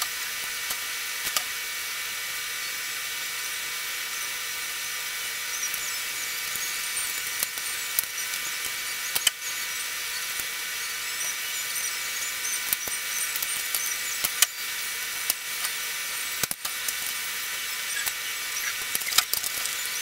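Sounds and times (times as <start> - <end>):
steady high hiss: 0.0 - 20.0.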